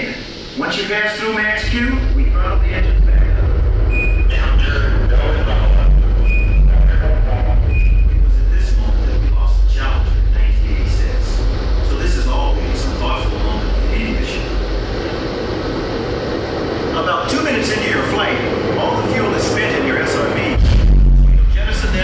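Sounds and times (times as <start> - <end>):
indistinct voices: 0.0 - 22.0.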